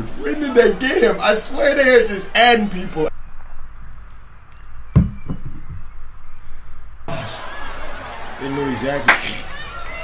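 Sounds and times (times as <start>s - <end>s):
dull knock: 5.0s - 5.8s.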